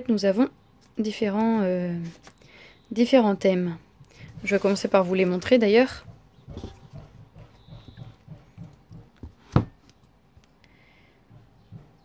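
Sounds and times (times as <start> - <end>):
board book thudding on table: 9.5 - 9.8.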